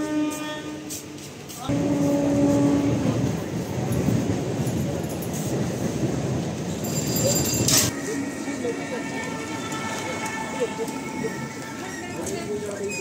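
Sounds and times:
horn blasts: 0.0 - 1.1, 1.7 - 3.2, 7.9 - 11.8.

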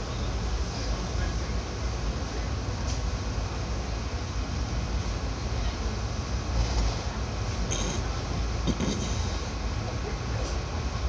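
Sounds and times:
train rumble and track noise: 0.0 - 11.0.

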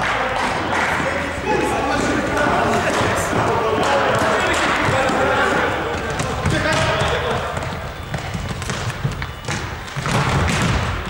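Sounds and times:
players calling out: 0.0 - 11.0
ball kicked and bouncing: 2.8 - 11.0.

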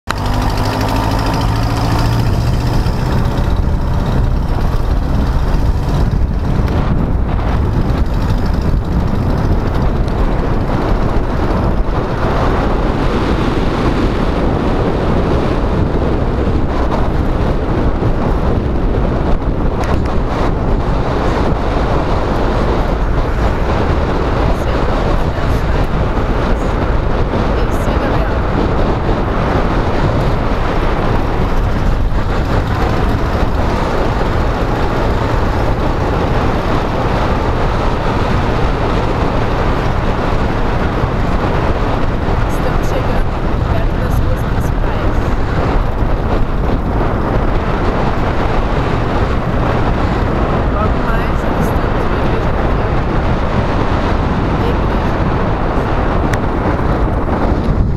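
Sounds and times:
car engine: 0.0 - 57.9
road rumble: 0.0 - 57.9
wind buffeting: 0.1 - 57.9.

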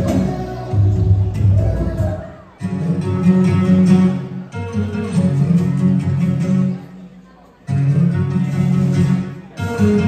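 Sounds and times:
background music: 0.0 - 6.9.

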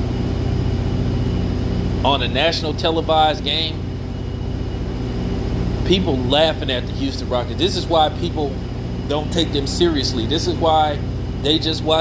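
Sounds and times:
low mechanical hum: 0.0 - 12.0
man talking: 2.0 - 3.8, 5.8 - 12.0.

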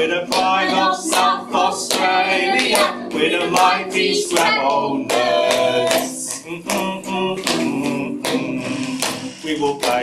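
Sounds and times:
person singing: 0.0 - 10.0.

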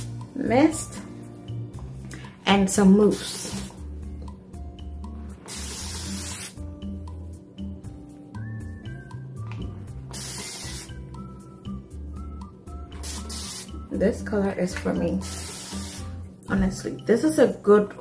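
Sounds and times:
background music: 0.0 - 18.0
spray bottle spraying: 3.1 - 3.8, 5.4 - 6.6, 10.0 - 11.0, 12.9 - 13.8, 15.2 - 16.2.

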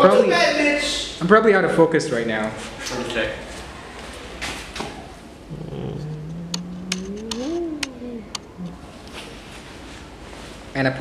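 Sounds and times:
man humming: 5.5 - 8.9.

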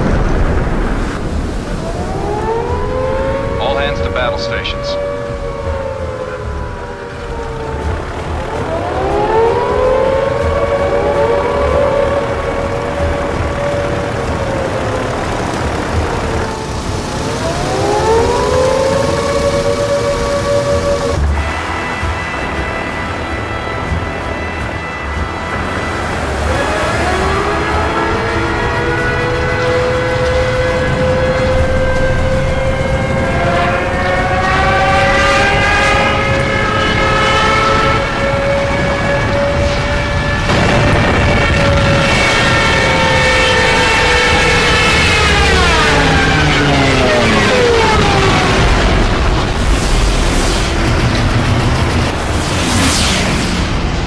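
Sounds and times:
constant low rumble: 0.0 - 54.0
siren winding up: 1.9 - 21.5.

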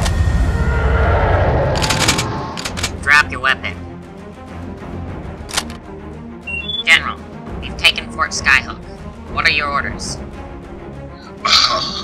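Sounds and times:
deep starship engine rumble: 0.0 - 5.0.

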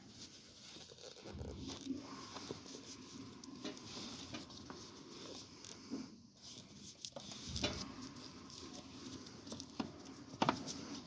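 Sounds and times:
sleeve rustling against camera: 0.0 - 5.8.

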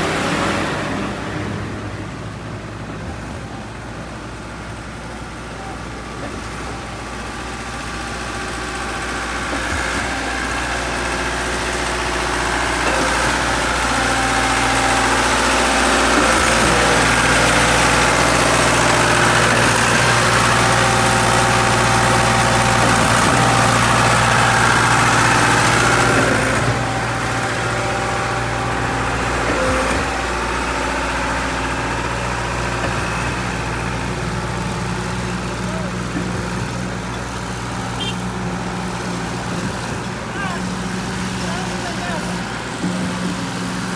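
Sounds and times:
diesel engine of concrete pump: 0.0 - 43.9.

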